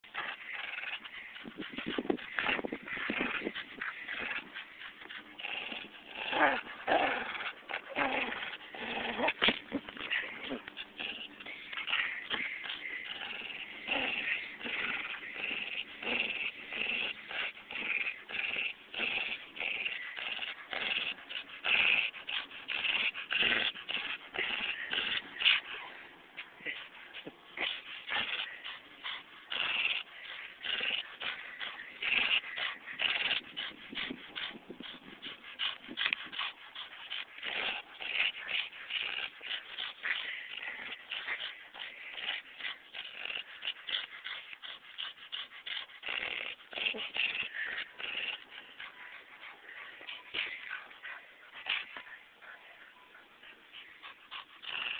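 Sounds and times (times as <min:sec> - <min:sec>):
dog play-growling and snarling: 0:00.0 - 0:54.9.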